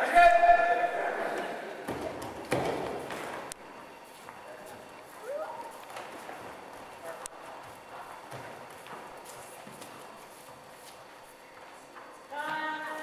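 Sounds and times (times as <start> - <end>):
bare feet on wooden floor: 1.9 - 13.0.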